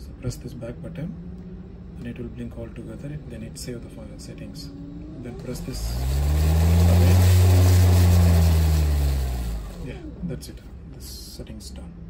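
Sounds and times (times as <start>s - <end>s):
loud low engine hum: 0.0s - 10.8s.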